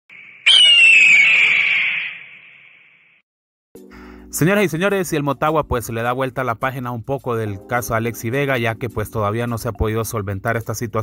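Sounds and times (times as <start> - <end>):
bird of prey screech: 0.1 - 3.2.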